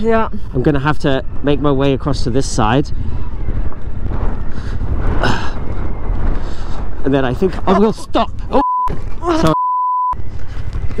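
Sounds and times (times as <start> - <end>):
wind buffeting microphone: 0.0 - 9.5.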